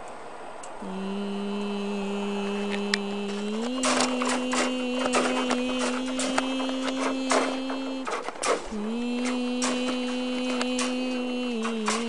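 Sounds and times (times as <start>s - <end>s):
person humming: 0.8s - 12.0s
objects clicking and rattling: 3.5s - 12.0s.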